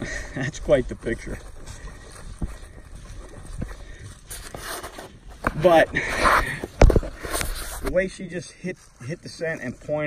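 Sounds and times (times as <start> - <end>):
footsteps swishing through grass: 0.5 - 10.0.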